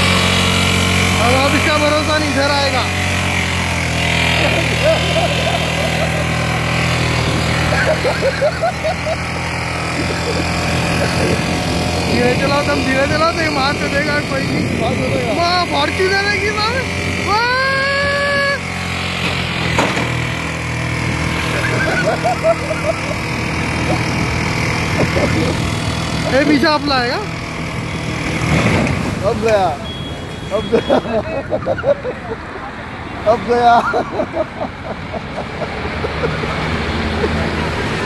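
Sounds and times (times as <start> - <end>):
motorcycle engine running: 0.0 - 38.0
wind and road noise: 0.0 - 38.0
person shouting: 17.2 - 18.7.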